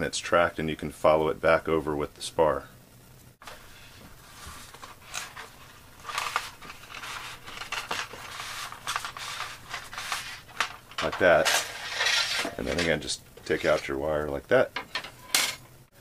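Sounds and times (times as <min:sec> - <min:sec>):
foam and paper rustling: 0:03.4 - 0:13.0.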